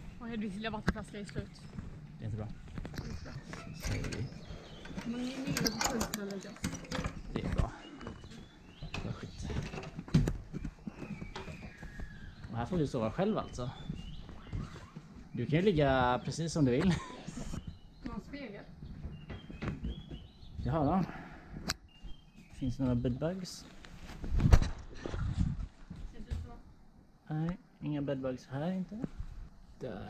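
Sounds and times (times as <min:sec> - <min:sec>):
footsteps on hollow wooden floor: 0:00.2 - 0:05.6, 0:07.2 - 0:17.0, 0:17.6 - 0:20.9.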